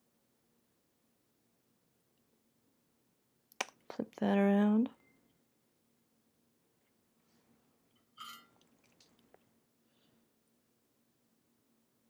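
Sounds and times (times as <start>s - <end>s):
soft rustle: 6.8s - 9.6s.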